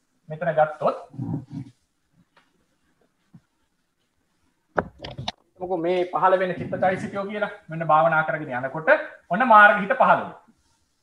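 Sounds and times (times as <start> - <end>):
man's low voice: 5.6 - 8.2.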